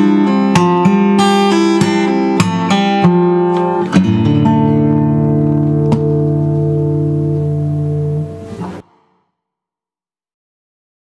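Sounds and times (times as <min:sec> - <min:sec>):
acoustic guitar chord ringing: 0:00.0 - 0:09.2.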